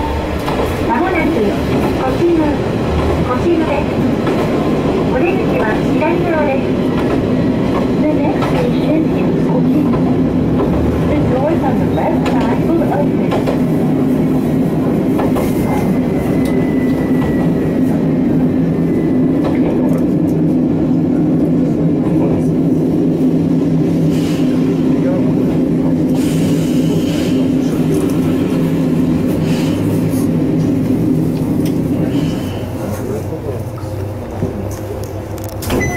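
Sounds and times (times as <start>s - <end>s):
diesel train engine droning: 0.0s - 35.9s.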